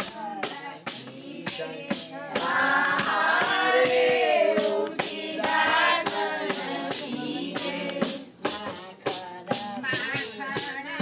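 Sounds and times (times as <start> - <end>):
group singing: 0.0 - 11.0
tambourine jingling: 0.0 - 11.0.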